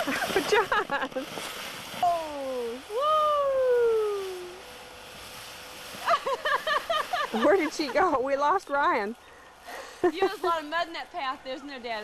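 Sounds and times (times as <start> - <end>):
person laughing: 0.0 - 1.3, 6.0 - 8.2
faint outdoor hiss: 0.0 - 12.0.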